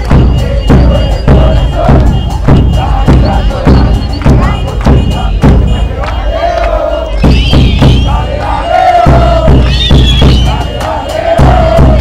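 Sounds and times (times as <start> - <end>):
crowd chanting: 0.0 - 12.0
drum beating: 0.0 - 12.0.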